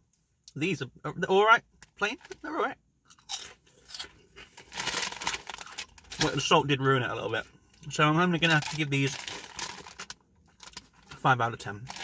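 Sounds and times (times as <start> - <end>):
crisps being crunched: 3.2 - 6.5, 8.4 - 11.1.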